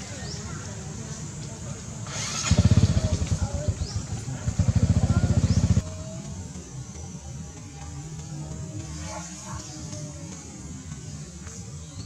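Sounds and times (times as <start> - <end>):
small motorcycle engine running: 0.2 - 6.4.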